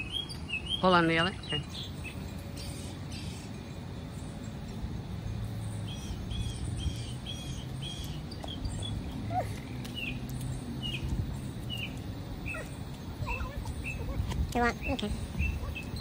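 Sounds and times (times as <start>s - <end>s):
bird chirping: 0.0s - 16.0s
low steady hum: 0.0s - 16.0s.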